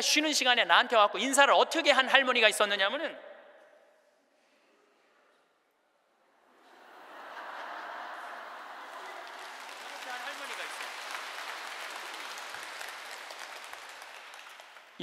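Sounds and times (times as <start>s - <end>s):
audience laughing: 6.6s - 10.4s
audience clapping: 7.1s - 15.0s.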